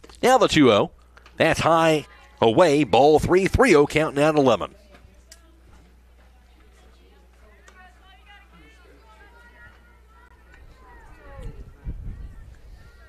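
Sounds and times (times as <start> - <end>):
faint distant voices: 4.7 - 13.0.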